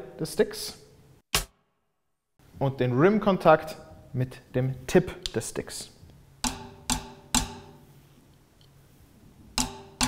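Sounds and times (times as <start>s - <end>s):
drumstick clicking snare rim: 9.6s - 10.0s.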